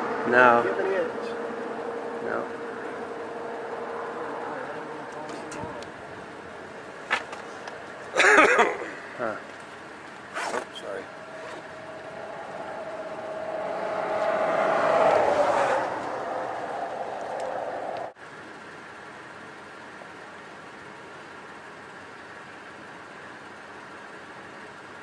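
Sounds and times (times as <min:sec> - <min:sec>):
motor vehicle humming: 0:00.0 - 0:24.8.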